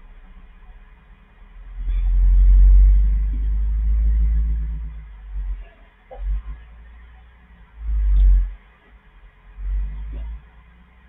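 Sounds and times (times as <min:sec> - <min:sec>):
loud low rumble: 0:01.5 - 0:06.7.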